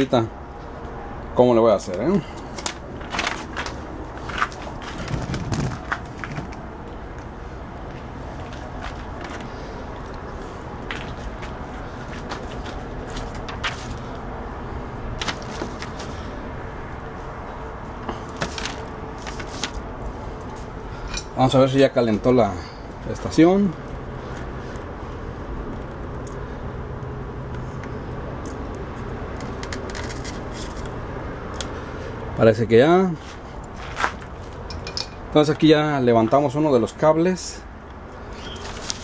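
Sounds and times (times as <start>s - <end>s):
low background hum: 0.0s - 39.0s
paper being handled: 2.5s - 6.6s, 11.0s - 14.2s, 15.2s - 16.3s, 18.2s - 19.8s, 38.5s - 39.0s.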